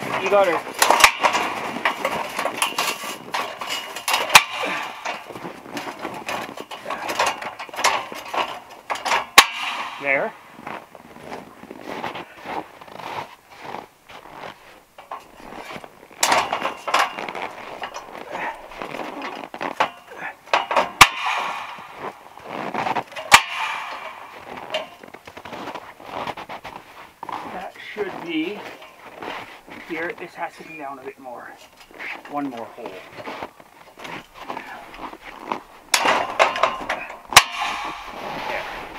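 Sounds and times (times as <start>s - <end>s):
sharp metallic clacks: 0.0s - 10.8s, 15.0s - 25.8s, 35.9s - 38.9s
steel scaffold knocks and clatter: 0.0s - 38.9s.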